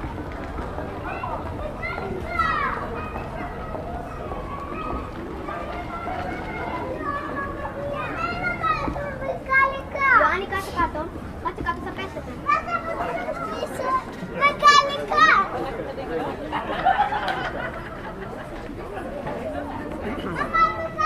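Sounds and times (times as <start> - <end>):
crowd talking: 0.0 - 21.0
children calling out: 1.0 - 10.9, 12.4 - 15.6, 20.0 - 21.0.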